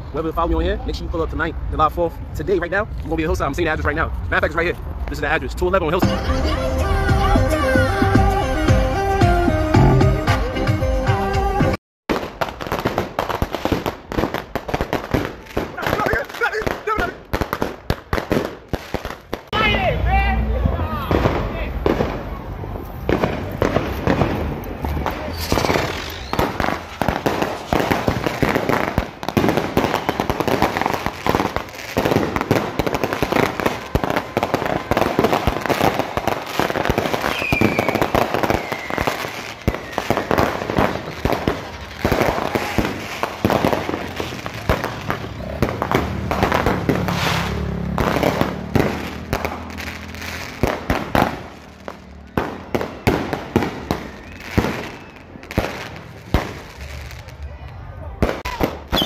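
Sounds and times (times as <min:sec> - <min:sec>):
firework bangs and crackling: 0:12.1 - 0:19.8, 0:20.5 - 0:59.0
falling firework whistle: 0:25.2 - 0:27.7, 0:33.4 - 0:41.1, 0:52.6 - 0:55.8, 0:58.4 - 0:59.0.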